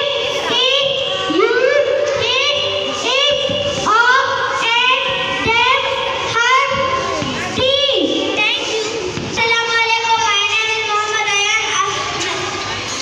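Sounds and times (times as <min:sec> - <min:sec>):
girl chanting into a microphone: 0:02.2 - 0:08.7.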